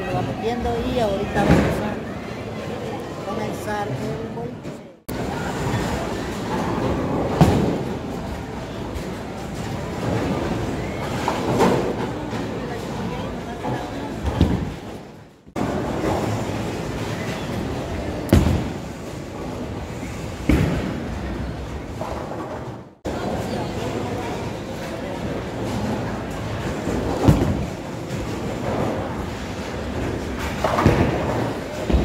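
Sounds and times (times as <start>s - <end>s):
hubbub of voices: 0.0s - 22.4s, 23.0s - 32.0s
bowling balls hitting pins: 25.2s - 32.0s.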